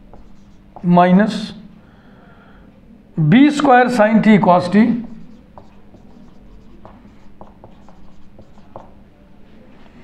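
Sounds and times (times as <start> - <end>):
marker pen writing on whiteboard: 0.0 - 1.0, 4.4 - 9.0.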